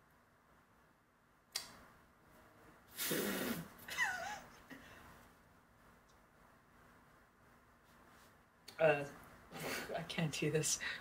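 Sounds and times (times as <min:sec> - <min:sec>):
sharp click: 0:01.5 - 0:01.8
woman laughing: 0:03.9 - 0:04.7.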